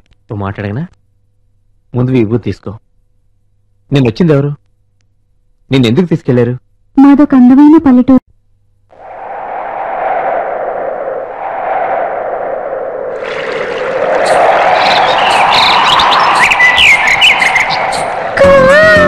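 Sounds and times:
wash of sound: 9.0s - 18.4s
short chirping whistles: 14.8s - 18.2s.

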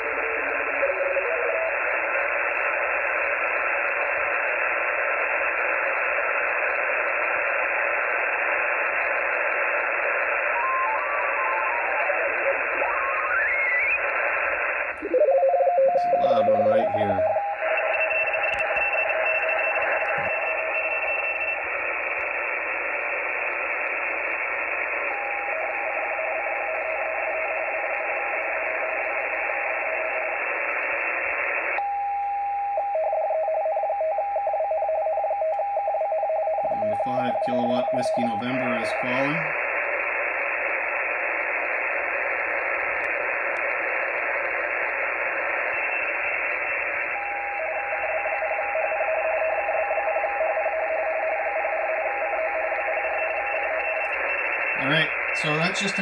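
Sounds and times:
garbled warbling radio signal: 0.0s - 2.2s, 10.0s - 21.7s, 36.7s - 39.7s, 44.4s - 56.0s
radio static hiss: 0.0s - 31.8s, 36.7s - 56.0s
two-tone teletype warble: 9.8s - 22.0s.

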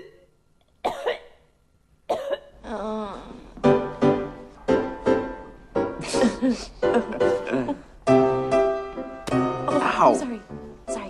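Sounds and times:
person coughing: 0.0s - 1.4s, 2.1s - 2.5s.

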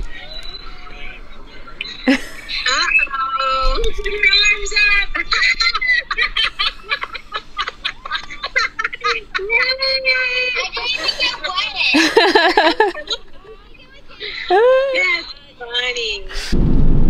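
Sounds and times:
people shrieking: 1.8s - 13.3s
people laughing: 1.8s - 15.3s.

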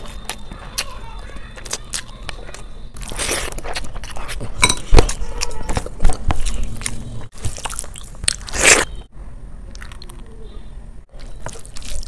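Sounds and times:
chewing and crunching food: 0.0s - 9.1s, 9.7s - 10.4s, 11.1s - 12.0s.

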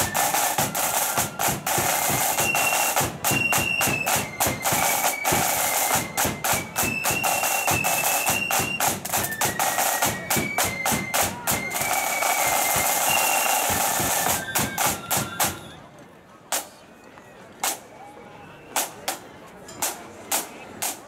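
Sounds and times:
side drums: 0.0s - 15.7s
flutes playing a tune: 0.0s - 15.9s.

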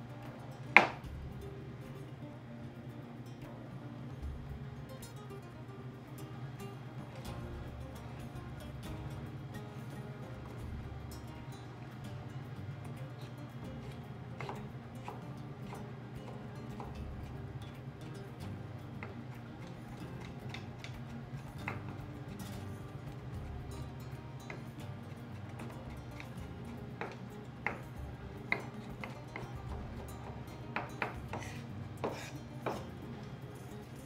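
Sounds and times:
background music: 0.0s - 34.0s
knife tapping on wooden board: 0.7s - 1.2s, 13.8s - 33.3s.

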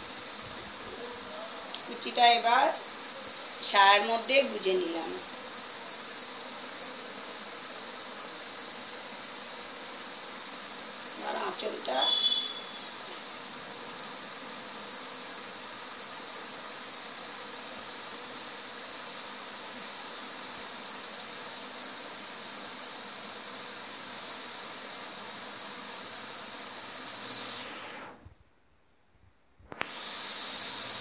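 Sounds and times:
steady hiss: 0.0s - 31.0s.

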